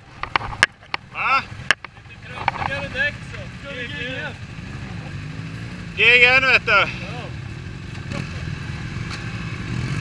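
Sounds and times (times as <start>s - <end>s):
motorcycle engine idling: 0.1s - 10.0s
raised voices calling out: 1.1s - 5.1s, 5.9s - 7.4s.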